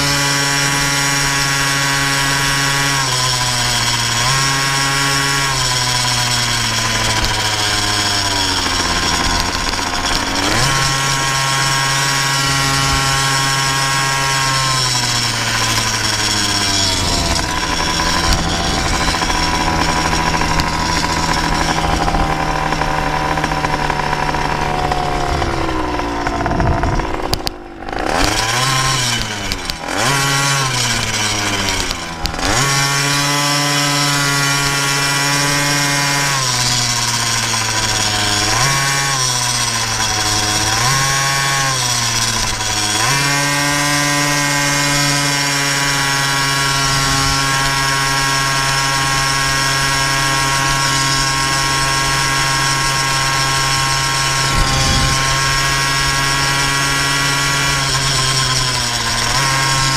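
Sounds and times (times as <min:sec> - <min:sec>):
two-stroke engine revving: 0:00.0 - 0:59.9.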